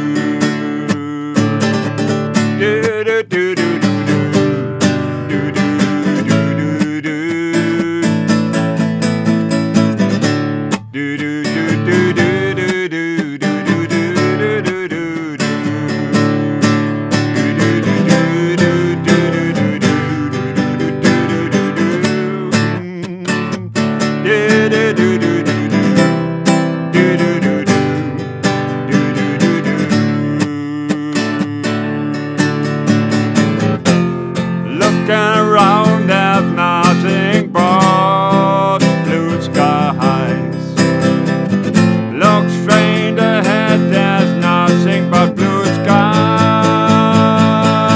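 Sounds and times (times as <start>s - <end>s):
classical guitar strumming: 0.0s - 47.9s.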